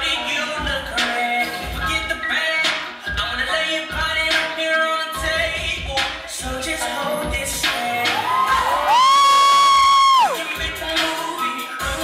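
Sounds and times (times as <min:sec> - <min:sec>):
dance music with steady beat: 0:00.0 - 0:12.0
shrill scream from audience: 0:08.1 - 0:10.4.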